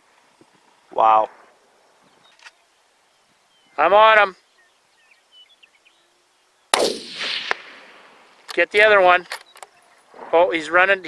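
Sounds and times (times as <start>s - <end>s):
rifle shot: 6.7s - 8.3s.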